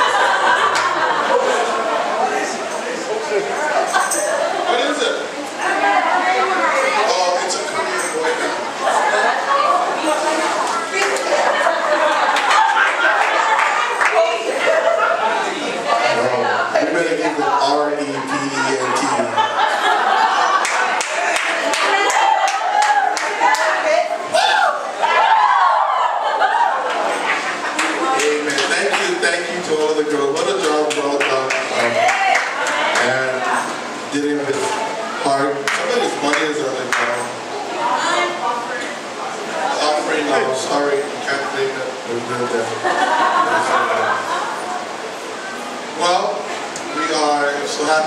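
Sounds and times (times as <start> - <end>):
man speaking over pa system: 16.1 - 19.4
man speaking over loudspeakers: 16.1 - 19.5, 28.1 - 32.0, 33.0 - 37.4, 46.0 - 48.0
hand clap: 20.6 - 23.7, 35.6 - 37.2.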